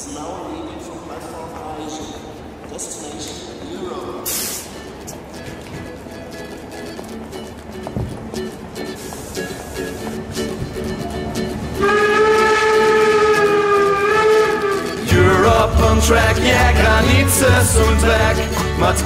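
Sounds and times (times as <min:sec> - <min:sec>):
acoustic guitars plucked and strummed: 0:04.3 - 0:19.0.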